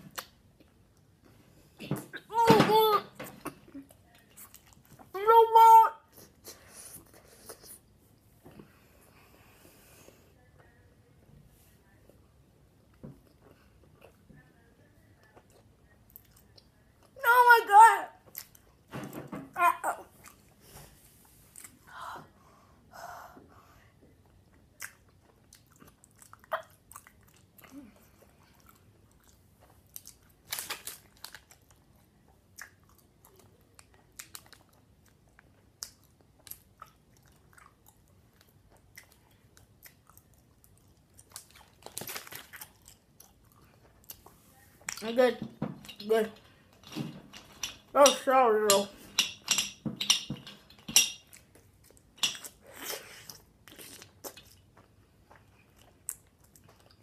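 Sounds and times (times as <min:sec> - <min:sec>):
gum chewing wet smacks: 0:24.2 - 0:30.4, 0:31.3 - 0:45.0, 0:51.3 - 0:57.0.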